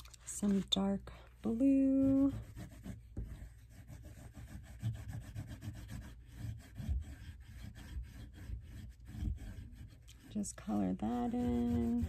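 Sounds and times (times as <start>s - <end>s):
oil pastel rubbing on paper: 0.4s - 12.0s.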